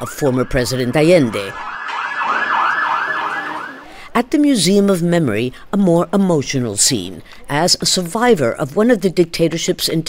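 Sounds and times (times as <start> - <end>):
police siren yelping: 0.0 - 4.0.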